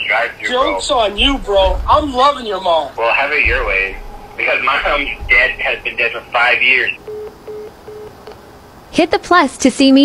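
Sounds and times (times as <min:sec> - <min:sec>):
phone beeps: 0:06.8 - 0:08.4.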